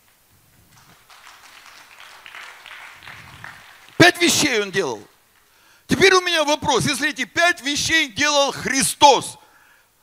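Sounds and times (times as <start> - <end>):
light scattered applause: 0.7 - 5.6.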